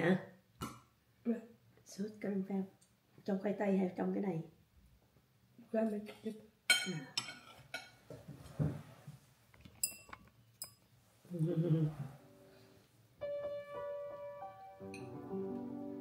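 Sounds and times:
cutlery clinking on ceramic bowl: 6.7 - 8.0, 9.8 - 10.8
piano music: 13.2 - 16.0.

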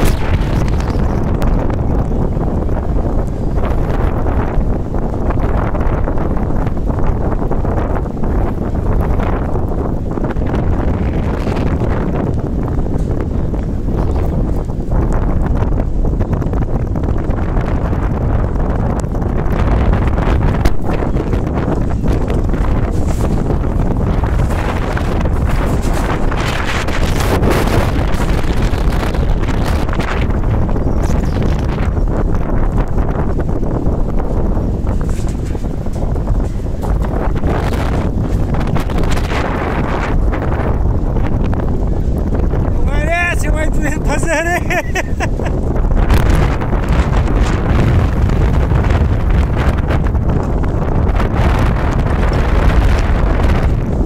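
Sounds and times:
strong gusty wind on microphone: 0.0 - 54.0.

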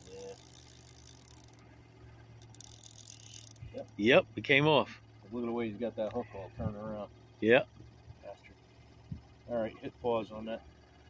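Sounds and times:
fishing reel clicking: 0.0 - 4.1
steady low hum: 0.0 - 11.0.

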